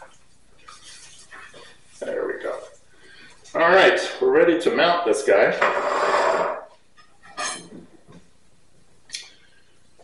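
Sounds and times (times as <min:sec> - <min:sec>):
man talking: 0:02.0 - 0:02.8, 0:03.5 - 0:05.6
metal rod clinking: 0:07.3 - 0:07.7.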